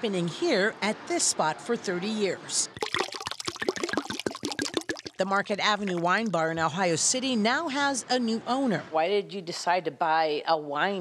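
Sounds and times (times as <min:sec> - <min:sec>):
wine pouring into glass: 0:02.7 - 0:06.3.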